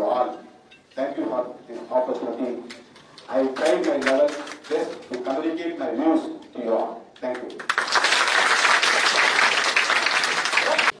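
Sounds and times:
audience applauding: 7.6 - 11.0.

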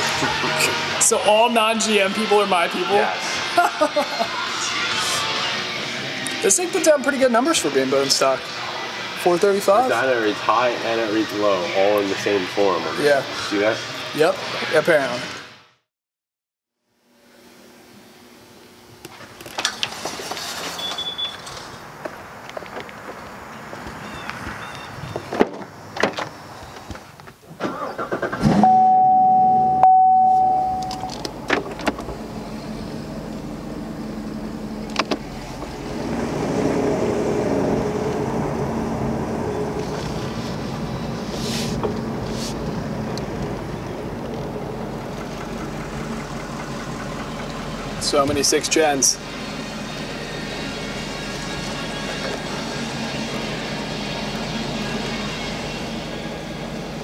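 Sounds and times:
car engine running: 28.6 - 57.0.

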